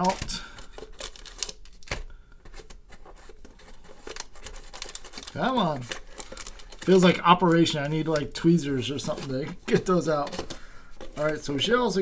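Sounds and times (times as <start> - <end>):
card packs crinkling: 0.0 - 12.0
packs scraping cardboard tray: 2.5 - 12.0.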